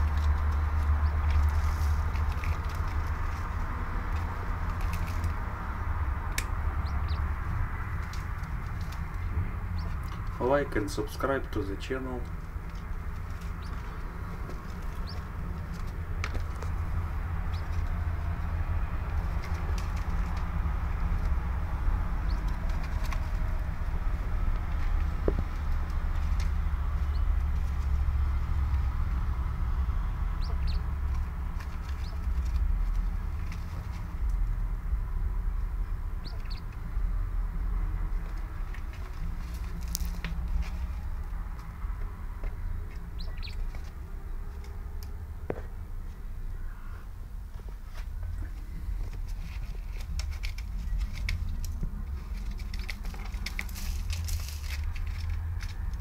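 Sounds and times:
grit and straw rustling: 0.0s - 34.7s, 37.4s - 42.2s, 47.5s - 56.0s
steady low hum: 0.0s - 56.0s
quail chirping: 6.7s - 7.4s, 9.7s - 10.2s, 13.3s - 15.8s, 17.4s - 17.9s, 22.2s - 23.4s, 26.8s - 27.8s, 30.3s - 32.6s, 35.9s - 36.8s, 42.6s - 43.9s.

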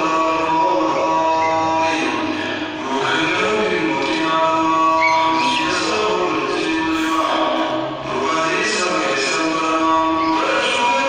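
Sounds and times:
man chanting through a microphone: 0.0s - 11.0s.

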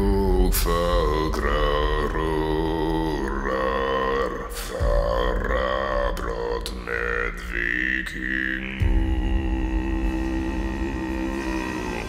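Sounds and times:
man singing slow melody: 0.0s - 12.0s
steady low drone: 0.0s - 12.0s.

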